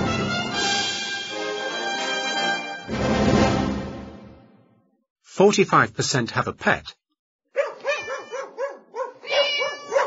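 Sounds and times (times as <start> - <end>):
dog barking: 7.5 - 10.0.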